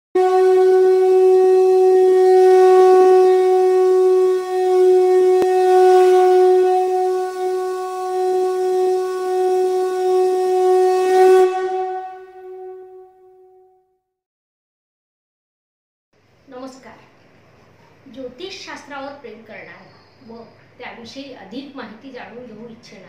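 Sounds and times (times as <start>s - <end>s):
horn blowing long steady note: 0.2s - 13.9s.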